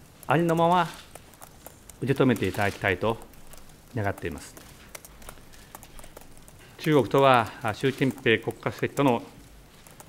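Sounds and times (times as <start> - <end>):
man speaking: 0.3 - 1.0, 2.0 - 3.3, 3.9 - 4.6, 6.8 - 9.4.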